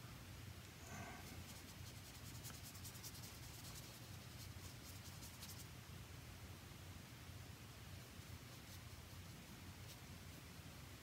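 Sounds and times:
brush strokes on paper: 0.8s - 5.7s, 8.0s - 10.1s.

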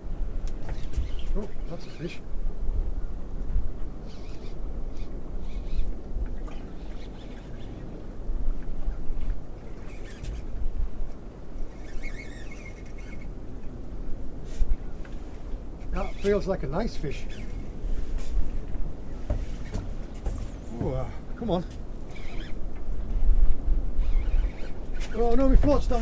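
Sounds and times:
water around boat: 0.0s - 26.0s
wind on microphone: 0.0s - 26.0s
fishing reel clicks: 11.8s - 13.3s, 22.1s - 22.6s, 24.0s - 25.2s.

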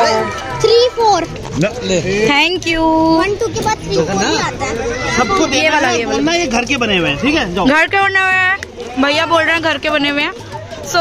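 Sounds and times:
music playing: 0.0s - 2.5s
voices talking and calling: 0.0s - 11.0s.

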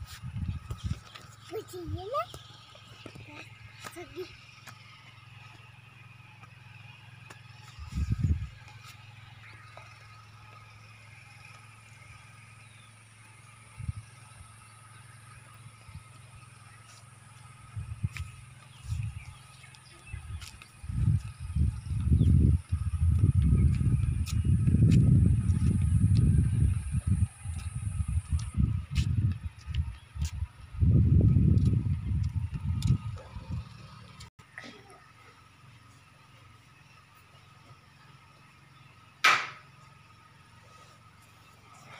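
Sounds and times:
wind buffeting microphone: 0.0s - 1.2s, 7.8s - 8.6s, 17.6s - 34.0s
steady low hum: 0.0s - 41.9s.

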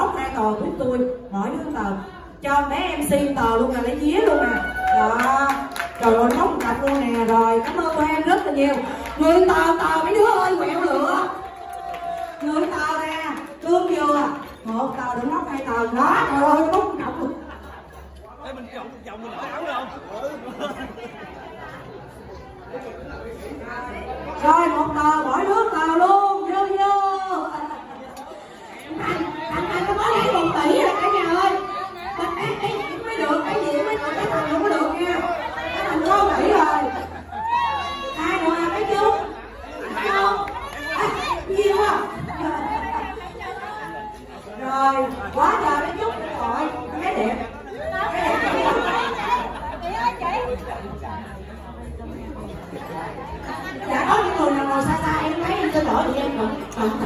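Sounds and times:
indistinct chatter: 0.0s - 57.0s.

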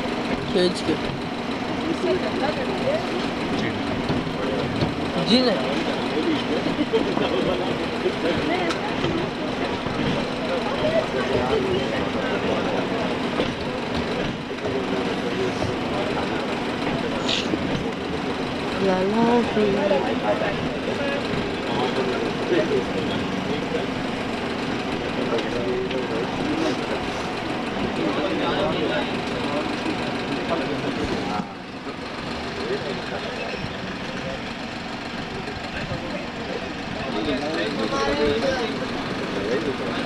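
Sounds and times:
people chattering: 0.0s - 40.0s
train engine hum: 0.0s - 40.0s.

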